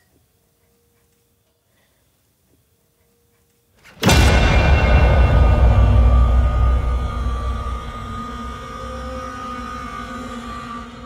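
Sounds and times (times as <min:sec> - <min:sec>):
eerie drone: 0:03.8 - 0:11.0
low rumbling boom: 0:03.9 - 0:11.0.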